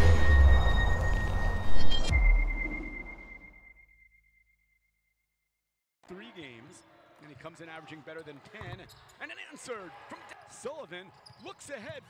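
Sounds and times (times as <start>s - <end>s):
deep boom hits: 0.0s - 3.6s.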